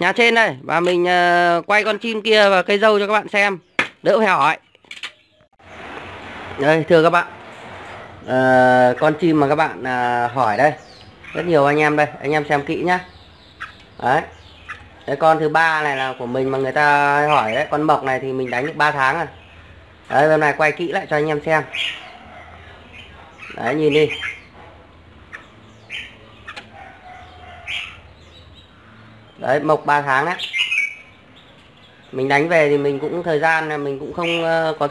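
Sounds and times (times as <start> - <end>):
bird chirps: 1.7 - 6.8, 7.5 - 34.9.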